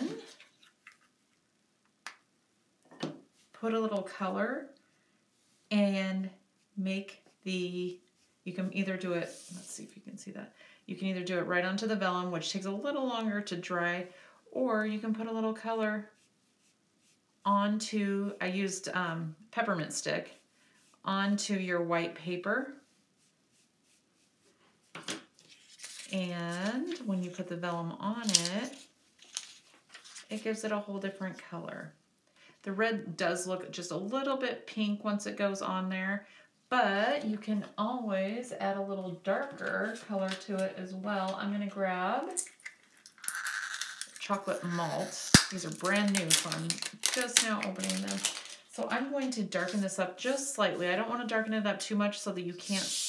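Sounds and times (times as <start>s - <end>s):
papers being handled: 24.9s - 27.4s, 28.2s - 30.5s, 45.3s - 49.9s.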